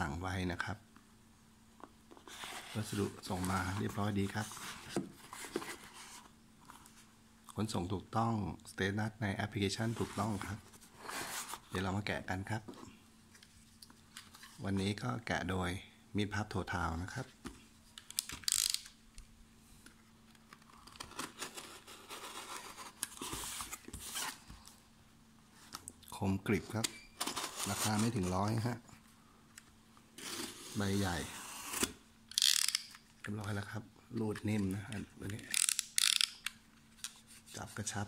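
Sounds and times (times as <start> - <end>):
cardboard box being handled: 2.2 - 6.3
cardboard and tape scraping: 20.7 - 24.5, 27.2 - 28.4, 30.2 - 32.0.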